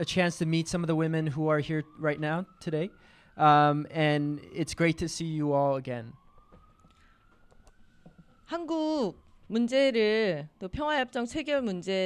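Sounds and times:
faint rising siren: 0.0s - 12.0s.

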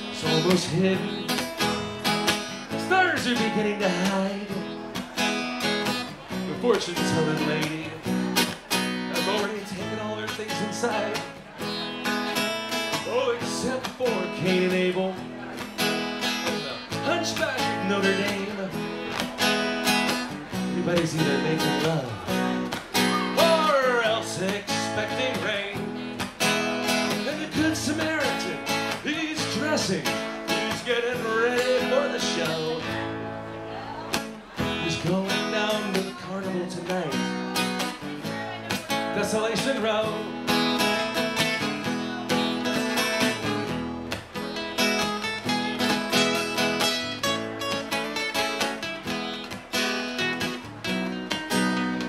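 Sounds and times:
acoustic guitars strumming: 0.0s - 52.0s
sliding guitar melody: 0.0s - 52.0s.

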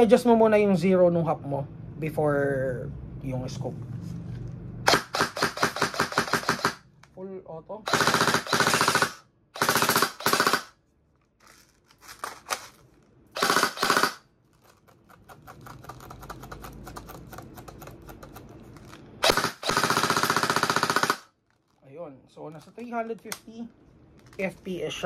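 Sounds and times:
airsoft gun firing bursts: 4.9s - 6.8s, 7.9s - 10.8s, 13.4s - 14.2s, 19.2s - 21.3s.

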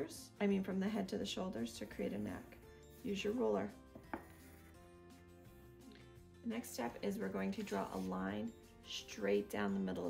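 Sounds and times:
faint music with sustained notes: 0.0s - 10.0s.

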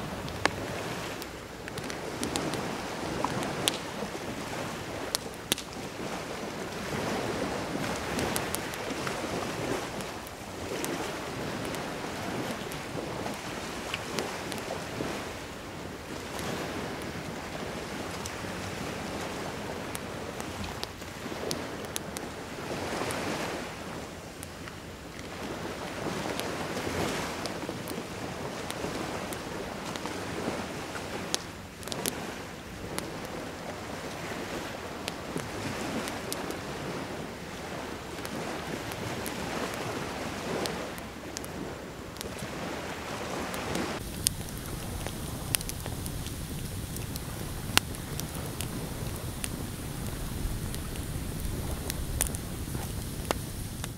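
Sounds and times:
campfire crackling and popping: 0.0s - 53.9s
surf washing onto beach: 0.0s - 53.9s
wind: 0.0s - 53.9s.

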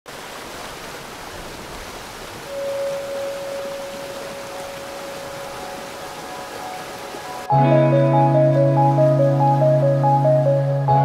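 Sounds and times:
waterfall rushing: 0.1s - 11.0s
held musical tone: 7.4s - 11.0s.

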